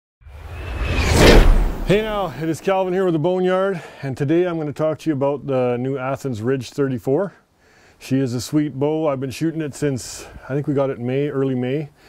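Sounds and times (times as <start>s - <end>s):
whoosh: 0.2s - 2.5s
deep rumble: 0.4s - 2.4s.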